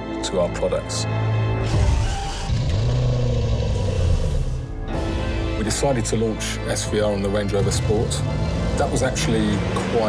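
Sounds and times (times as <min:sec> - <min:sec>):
background music: 0:00.0 - 0:10.0
car engine revving: 0:07.2 - 0:10.0.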